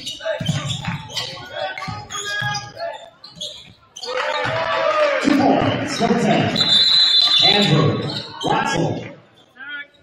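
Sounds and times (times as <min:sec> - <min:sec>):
voices in gym: 0:00.0 - 0:10.0
basketball bouncing on wood floor: 0:00.4 - 0:02.1.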